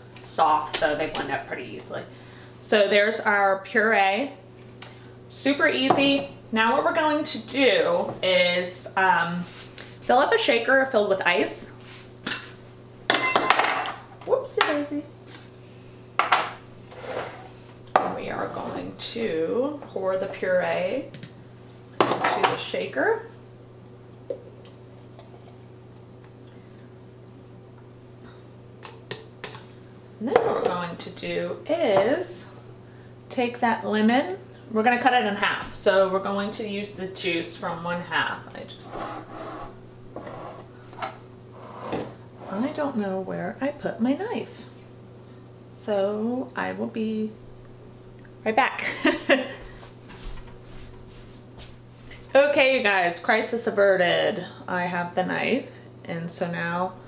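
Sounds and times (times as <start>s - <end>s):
low steady hum: 0.0s - 57.0s
soft scrape on wooden counter: 16.9s - 17.5s, 38.9s - 40.7s, 41.6s - 42.6s
faint scuffing: 49.6s - 52.0s.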